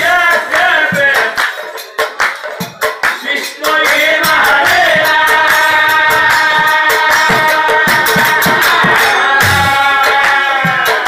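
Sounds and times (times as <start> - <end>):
chorus singing: 0.0 - 11.0
drum strokes: 0.0 - 11.0
hand claps: 0.5 - 4.0.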